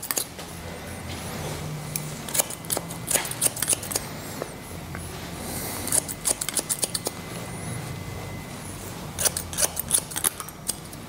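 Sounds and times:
scissors snipping hair: 0:02.0 - 0:04.1, 0:05.9 - 0:07.2, 0:09.2 - 0:11.0.

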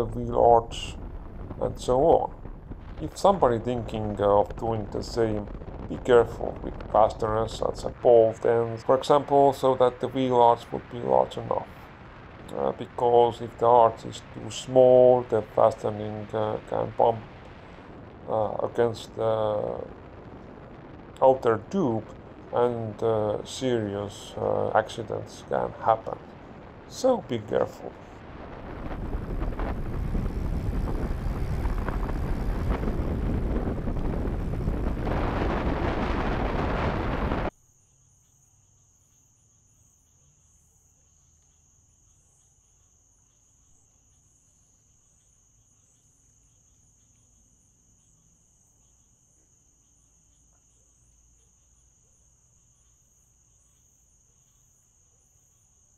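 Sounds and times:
high-pitched cricket trill: 0:00.0 - 0:55.9
wind and road rush: 0:00.6 - 0:07.1, 0:27.8 - 0:37.5.

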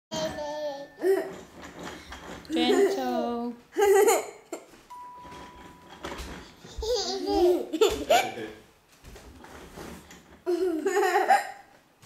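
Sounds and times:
baby laughing: 0:06.8 - 0:08.4, 0:10.5 - 0:11.6.

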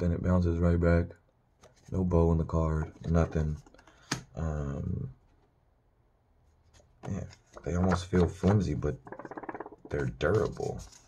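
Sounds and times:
plastic playing cards ticking: 0:07.1 - 0:11.0.

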